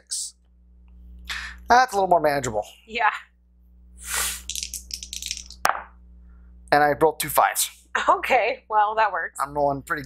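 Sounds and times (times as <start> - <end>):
dice rattling and tumbling in tray: 4.5 - 5.6
dice knocking as they settle: 4.5 - 5.9.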